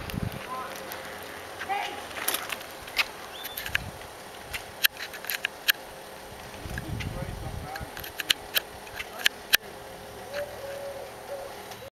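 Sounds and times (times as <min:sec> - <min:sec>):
faint outdoor background: 0:00.0 - 0:11.9
sharp clicks: 0:04.5 - 0:05.8, 0:07.7 - 0:09.6.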